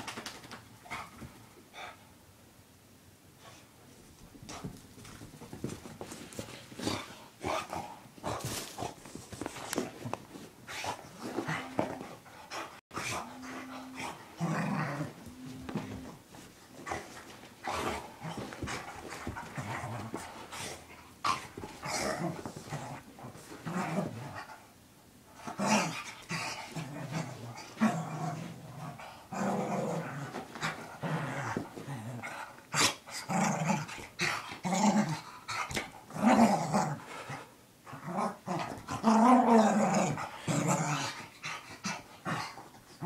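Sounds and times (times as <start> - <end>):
small dog growling: 13.0 - 16.1, 26.7 - 33.9.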